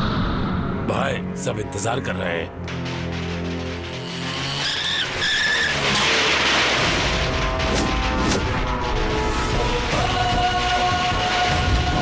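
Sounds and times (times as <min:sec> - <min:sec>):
film background score: 0:00.0 - 0:12.0
car tyres squealing: 0:04.0 - 0:07.6.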